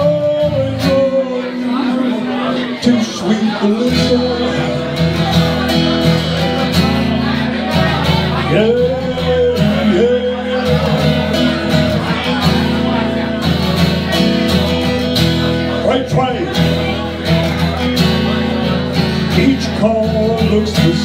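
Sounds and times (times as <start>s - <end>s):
strummed acoustic guitar: 0.0s - 21.0s.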